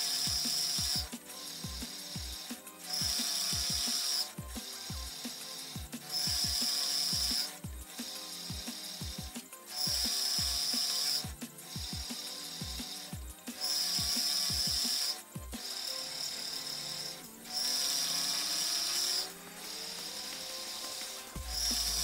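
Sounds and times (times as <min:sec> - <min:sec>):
milling machine cutting steel: 0:00.0 - 0:09.0, 0:09.7 - 0:22.0
music with beat and bass: 0:00.0 - 0:17.6, 0:18.2 - 0:22.0.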